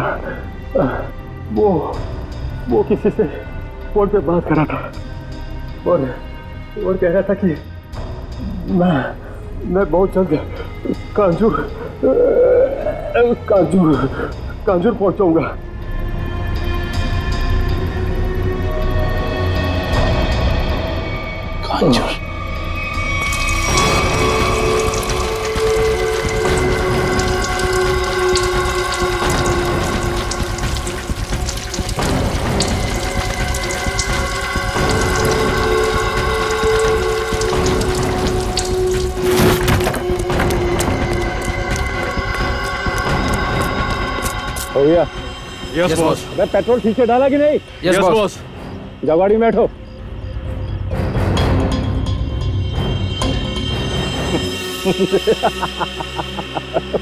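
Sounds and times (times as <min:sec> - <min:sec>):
tense background score: 0:00.0 - 0:57.0
petrol splashing on concrete: 0:23.2 - 0:44.6.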